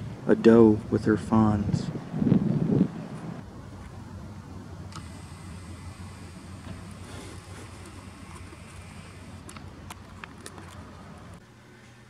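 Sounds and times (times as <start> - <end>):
wind rushing on microphone: 0.0 - 3.4
low outdoor rumble: 0.0 - 12.0.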